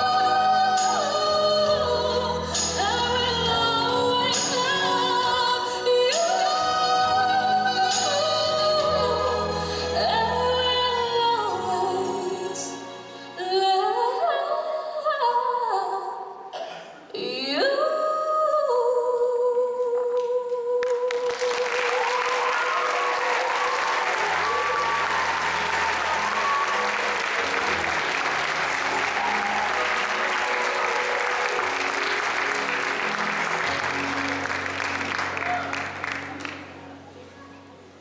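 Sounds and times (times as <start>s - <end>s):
audience applause: 21.1s - 36.9s.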